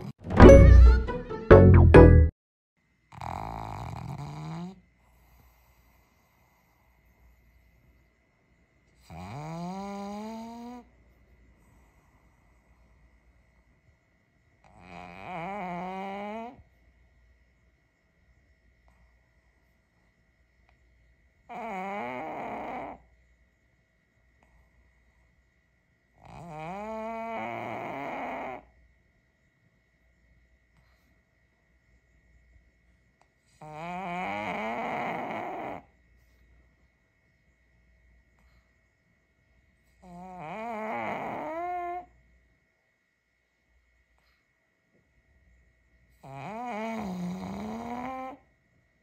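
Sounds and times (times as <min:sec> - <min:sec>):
dog snoring: 0:03.1 - 0:08.0, 0:09.0 - 0:11.0, 0:14.6 - 0:16.8, 0:21.4 - 0:23.1, 0:26.2 - 0:28.7, 0:33.5 - 0:35.9, 0:39.9 - 0:42.1, 0:46.2 - 0:48.5.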